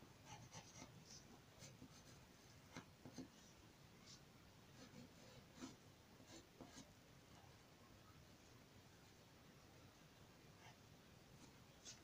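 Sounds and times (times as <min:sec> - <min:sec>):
pencil scratching on paper: 0:00.2 - 0:06.9, 0:10.6 - 0:12.0.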